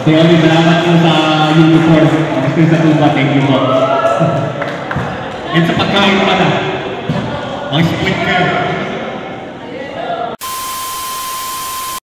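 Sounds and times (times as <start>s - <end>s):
high test-tone beep: 10.4s - 12.0s
tv static hiss: 10.4s - 12.0s.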